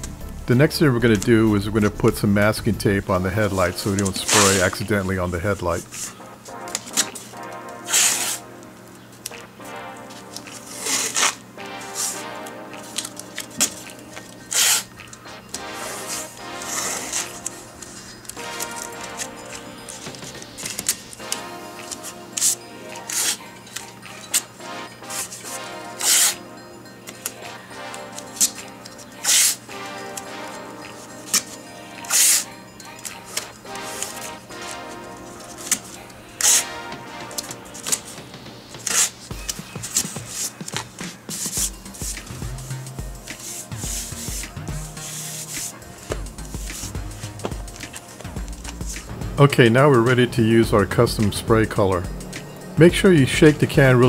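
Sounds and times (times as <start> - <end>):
background music: 0.0 - 54.0
masking tape ripping off roll: 5.9 - 8.5, 10.2 - 24.4, 25.0 - 26.4, 29.2 - 30.5, 31.3 - 32.5, 33.3 - 38.2, 38.8 - 42.3.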